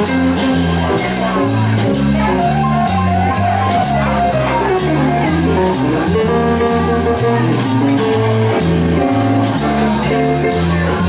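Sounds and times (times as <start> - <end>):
bass notes: 0.0 - 11.0
jazz piano: 0.0 - 11.0.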